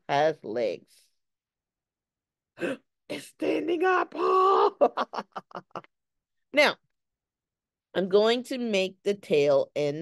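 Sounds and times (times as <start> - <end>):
woman laughing: 4.1 - 5.9.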